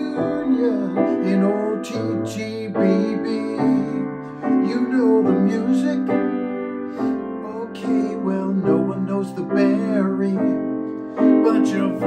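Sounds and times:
grand piano chords: 0:00.0 - 0:12.0
man singing: 0:00.0 - 0:12.0.

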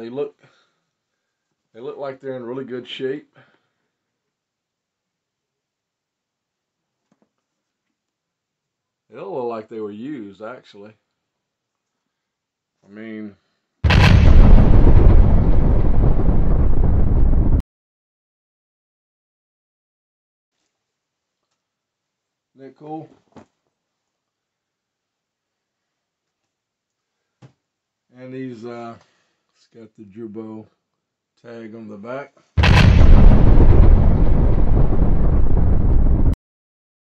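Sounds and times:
explosion rumble: 0:13.8 - 0:17.6, 0:32.6 - 0:36.4.

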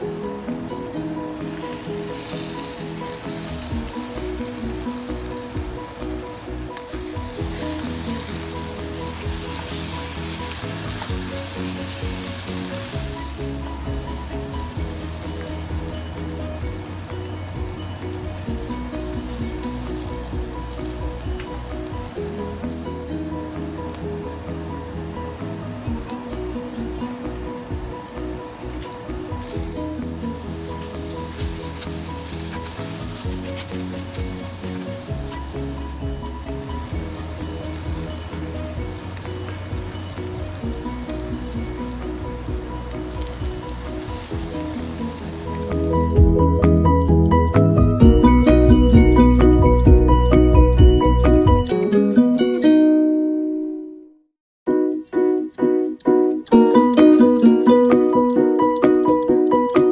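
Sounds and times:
paste sizzling in oil: 0:00.0 - 0:51.4
background music: 0:00.0 - 0:54.1, 0:54.7 - 0:59.9
spatula stirring in pan: 0:00.8 - 0:16.4, 0:29.4 - 0:46.6.

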